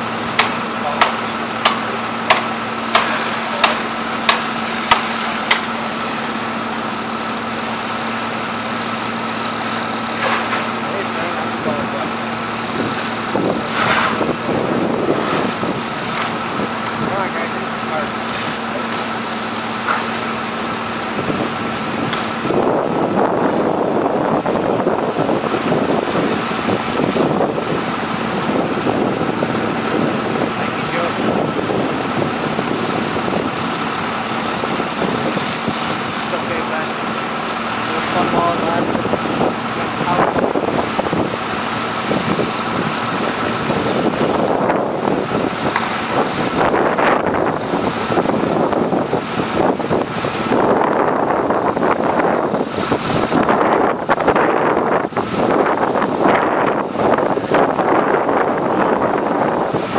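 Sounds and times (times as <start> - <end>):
diesel engine humming: 0.0 - 59.9
rough rushing noise: 0.0 - 59.9.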